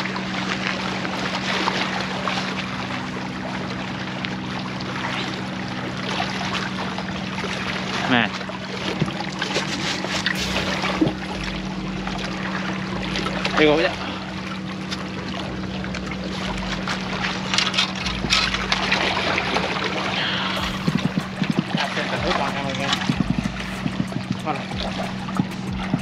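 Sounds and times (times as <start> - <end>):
water lapping against rocks: 0.0 - 26.0
steady low hum: 9.7 - 26.0.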